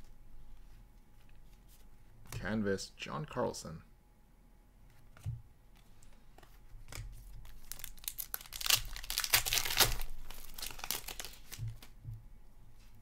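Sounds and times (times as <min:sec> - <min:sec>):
trading cards rustling: 0:06.0 - 0:11.9.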